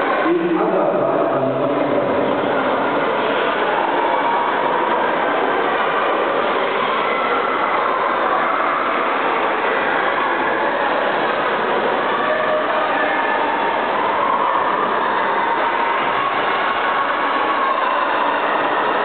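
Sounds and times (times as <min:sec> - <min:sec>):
crowd voices echoing: 0:00.0 - 0:19.0.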